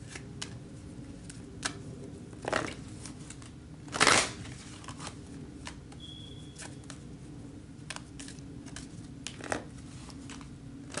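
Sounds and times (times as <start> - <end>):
cards riffle shuffling: 2.4 - 7.1, 7.8 - 11.0.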